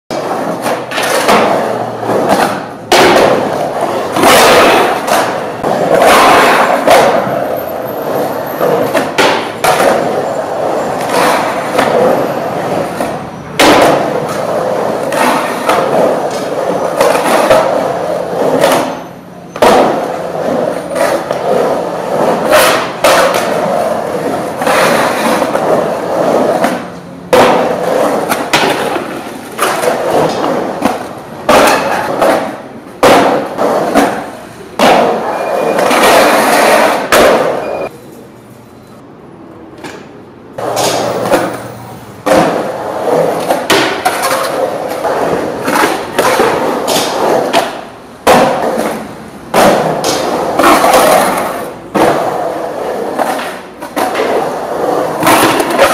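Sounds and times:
skateboard knocks and thuds: 0:00.1 - 0:07.4, 0:08.6 - 0:37.7, 0:39.8 - 0:55.9
skateboard wheels rolling on concrete: 0:00.1 - 0:55.9.

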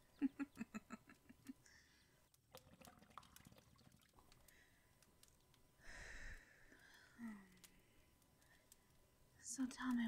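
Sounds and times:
hookah water bubbling: 0:02.4 - 0:04.6.

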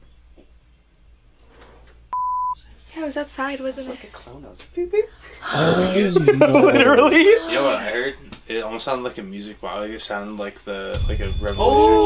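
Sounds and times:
censor bleep: 0:02.1 - 0:02.6.

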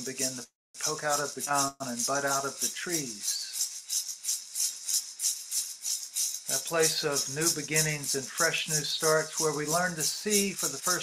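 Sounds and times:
hand rattle shaking: 0:00.0 - 0:11.0.

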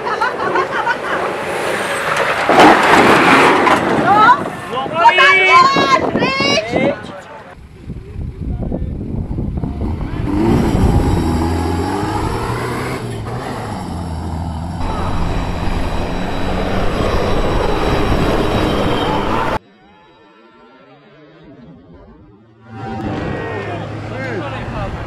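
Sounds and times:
engine revving under load: 0:09.1 - 0:19.6.

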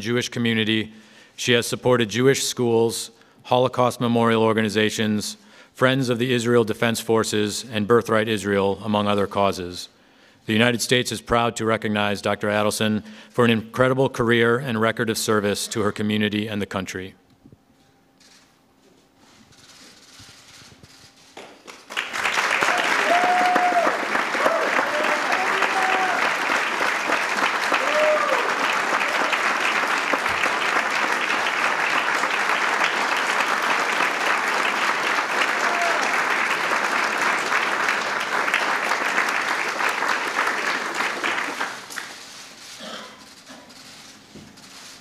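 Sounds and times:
audience applauding: 0:21.4 - 0:42.8.

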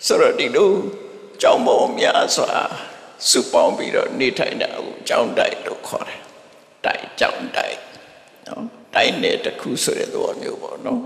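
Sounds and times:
elderly man speaking into microphone: 0:00.0 - 0:11.0.

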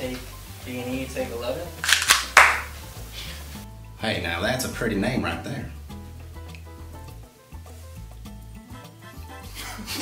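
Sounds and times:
background music: 0:00.0 - 0:10.0
sharp hand clap: 0:01.8 - 0:02.7.

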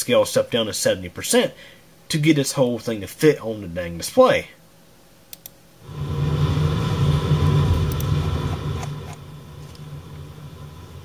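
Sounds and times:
mouse clicks: 0:05.3 - 0:05.6
thunder rumble through speakers: 0:05.9 - 0:11.0.

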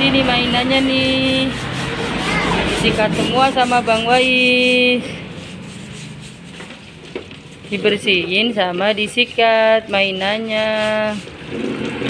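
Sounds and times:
plastic brush scrubbing: 0:00.0 - 0:12.0
tap water splashing on plastic: 0:06.6 - 0:07.5.

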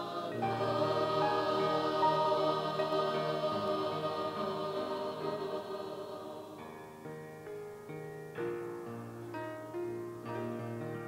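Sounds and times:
choir singing a hymn: 0:00.0 - 0:07.4.

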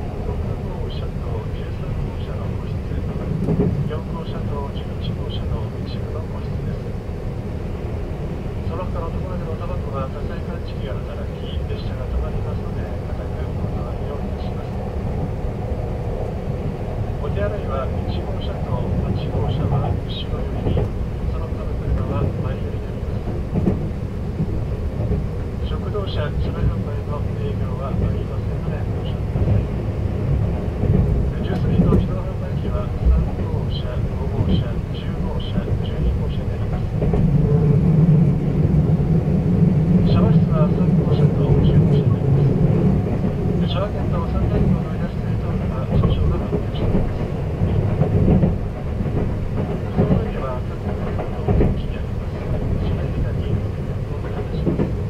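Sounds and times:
train wheels rumbling on rails: 0:00.0 - 0:55.0.

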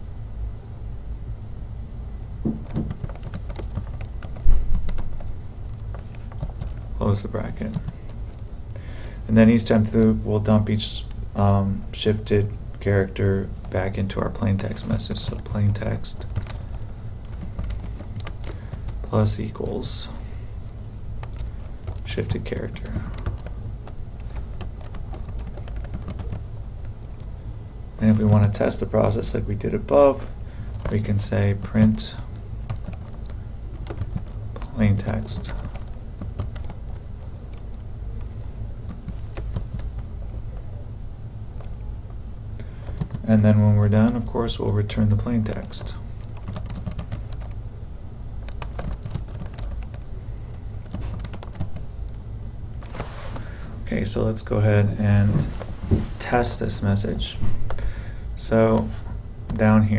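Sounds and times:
low steady hum: 0:00.0 - 0:59.9
computer keyboard keys clicking: 0:02.5 - 0:06.9, 0:07.6 - 0:08.4, 0:14.7 - 0:19.8, 0:21.2 - 0:23.5, 0:24.2 - 0:26.4, 0:30.7 - 0:40.4, 0:41.6 - 0:41.8, 0:42.8 - 0:43.2, 0:45.6 - 0:47.6, 0:48.4 - 0:50.0, 0:50.8 - 0:51.8.

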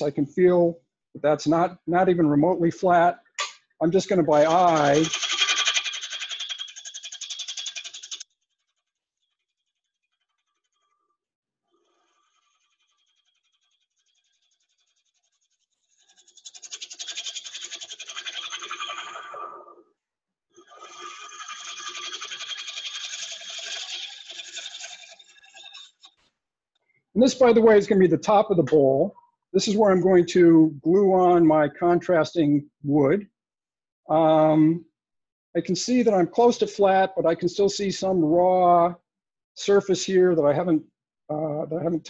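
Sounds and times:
gouge cutting spinning wood: 0:20.6 - 0:26.1.

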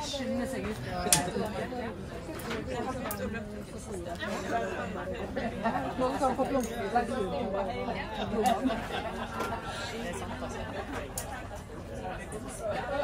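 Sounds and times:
many people talking at once: 0:00.0 - 0:13.0.

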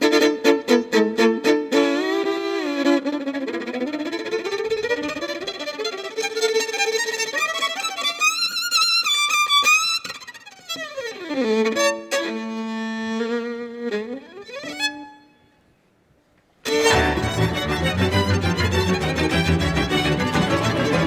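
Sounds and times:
solo violin playing: 0:00.0 - 0:15.7, 0:16.6 - 0:21.0.

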